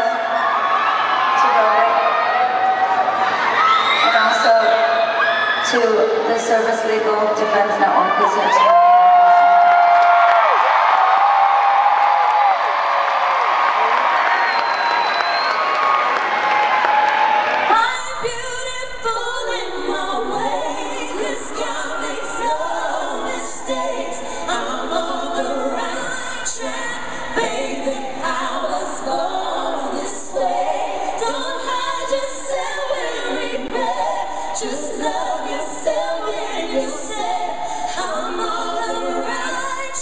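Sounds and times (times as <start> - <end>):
crowd noise: 0.0 - 40.0
women singing in harmony: 4.0 - 8.7, 17.7 - 40.0.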